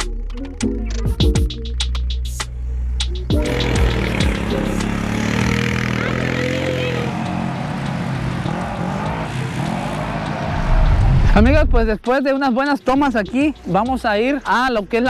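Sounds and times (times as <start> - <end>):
background music: 0.0 - 15.0
quad bike engines revving: 3.3 - 11.0.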